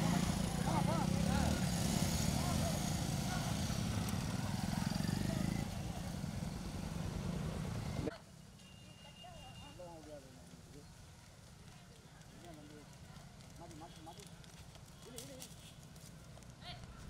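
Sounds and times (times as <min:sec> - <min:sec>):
motorcycle engines droning: 0:00.0 - 0:08.1.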